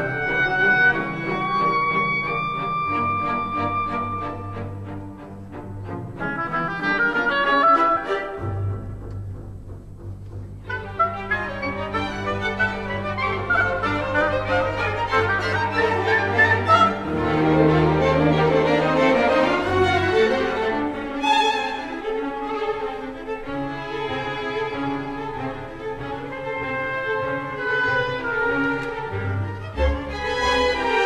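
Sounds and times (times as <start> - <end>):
string orchestra playing: 0.0 - 31.0.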